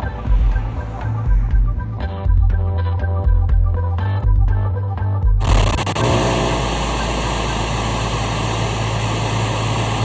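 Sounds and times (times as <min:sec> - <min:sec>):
steady engine-like drone: 0:00.0 - 0:02.2, 0:05.4 - 0:10.0.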